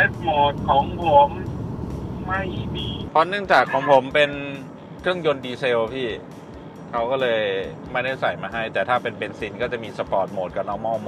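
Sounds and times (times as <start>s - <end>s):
man talking: 0.0s - 1.4s, 2.2s - 6.2s, 7.0s - 11.0s
car cabin road and engine rumble: 0.0s - 11.0s.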